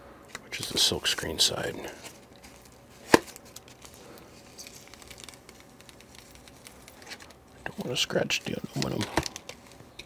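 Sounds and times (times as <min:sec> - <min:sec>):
plastic bag rustling: 0:01.4 - 0:10.0.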